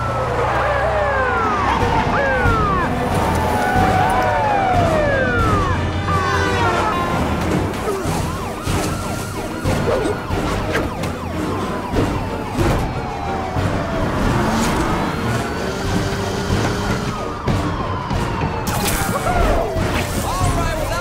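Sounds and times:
police sirens wailing: 0.0s - 21.0s.

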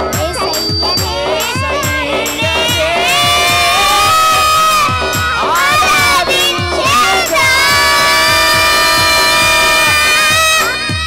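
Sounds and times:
backing track with steady beat: 0.0s - 11.0s
children singing into microphones: 0.2s - 11.0s.

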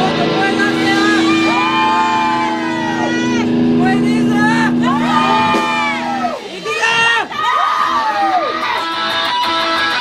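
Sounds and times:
rock band sustained chord: 0.0s - 10.0s
voices yelling: 0.0s - 10.0s.

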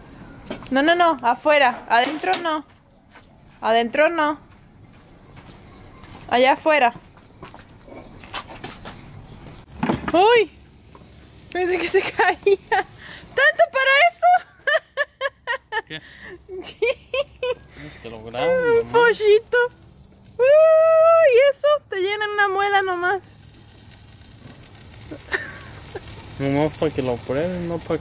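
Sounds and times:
person speaking: 17.8s - 19.1s.

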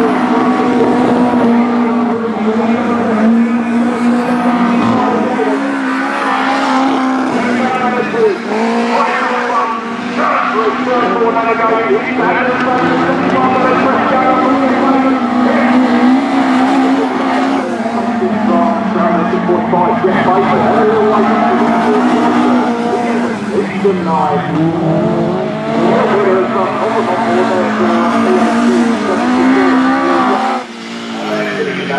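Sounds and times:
race car engines at high revs: 0.0s - 31.9s.

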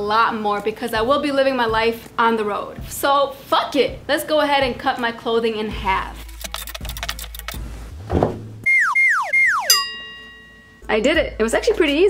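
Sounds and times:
cartoon falling whistle tones: 8.6s - 9.8s
ringing tone: 8.7s - 10.9s.

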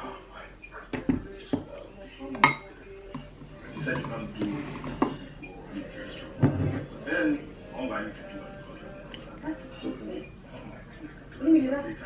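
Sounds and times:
dishes and cutlery clinking: 0.9s - 5.4s, 6.0s - 7.2s.

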